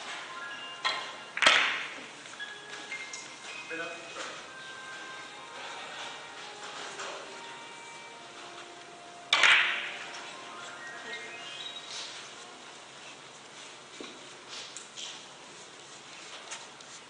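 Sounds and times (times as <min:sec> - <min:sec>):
murmur of hall: 0:00.0 - 0:17.0.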